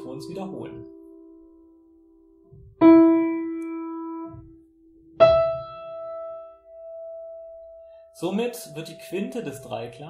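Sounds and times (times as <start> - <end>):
piano chord tail: 0.0 - 10.0
piano note ringing: 0.0 - 10.0.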